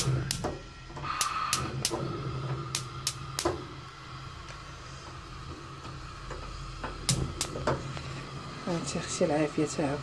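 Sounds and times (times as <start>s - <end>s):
gas flames hissing: 0.0s - 10.0s
sharp clicks: 1.1s - 2.0s.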